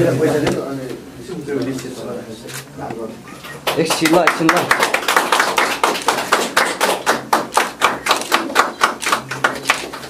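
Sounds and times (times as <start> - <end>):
people clapping: 3.4 - 10.0.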